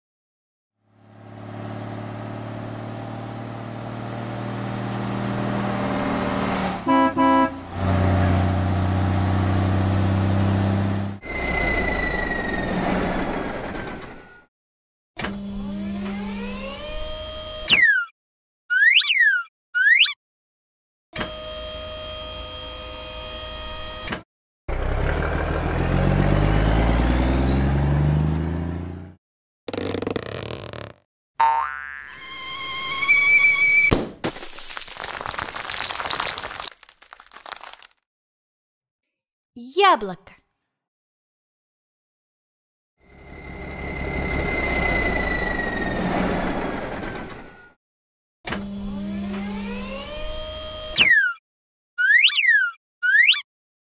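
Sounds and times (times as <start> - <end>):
pulsed honk: 6.8 - 7.8
cartoon toy truck engine hum: 15.2 - 18.0, 43.1 - 47.7, 48.5 - 51.4
springy cartoon boings: 31.4 - 32.4, 52.0 - 53.4.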